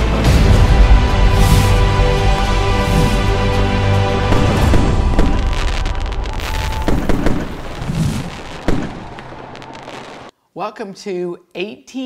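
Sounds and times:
fireworks bursting and crackling: 0:04.2 - 0:10.3.

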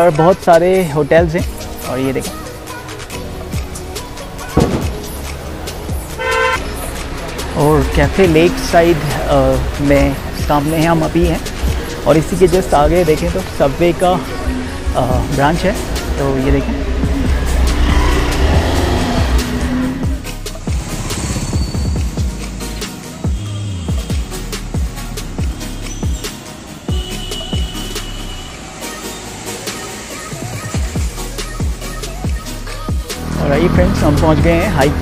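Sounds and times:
background music: 0:00.0 - 0:35.0
low street rumble: 0:00.0 - 0:35.0
car driving by: 0:02.3 - 0:31.2
vehicle horn toot: 0:06.1 - 0:06.8, 0:23.3 - 0:24.2, 0:26.9 - 0:28.8.

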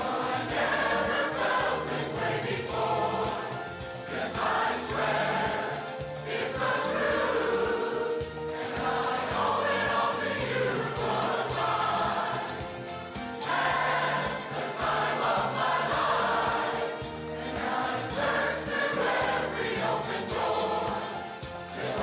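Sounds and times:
chorus singing in harmony: 0:00.0 - 0:22.0.

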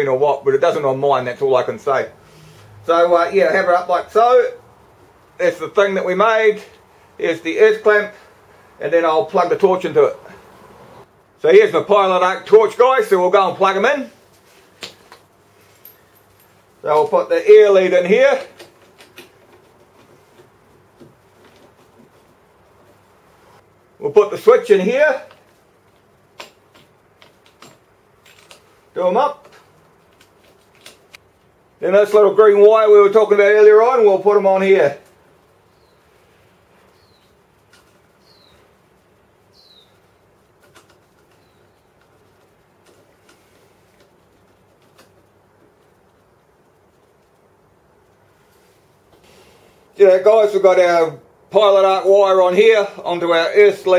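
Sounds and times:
bird chirping: 0:35.6 - 0:36.2, 0:36.8 - 0:37.5, 0:38.1 - 0:40.4, 0:41.1 - 0:42.1.

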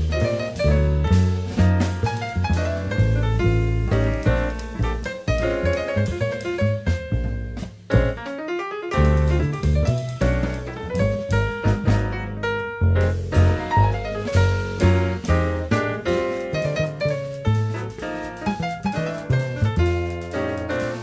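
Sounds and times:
double bass: 0:00.0 - 0:21.0
drum kit: 0:00.0 - 0:21.0
grand piano: 0:00.0 - 0:21.0.

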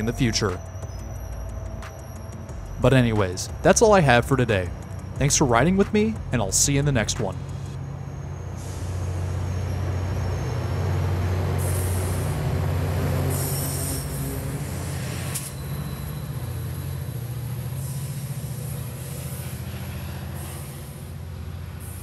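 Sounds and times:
locomotive engine drone: 0:00.0 - 0:22.0
train rolling past: 0:00.0 - 0:22.0.

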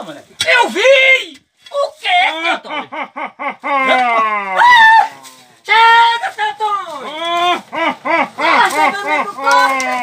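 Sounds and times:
men crying out and yelling: 0:02.0 - 0:10.0.

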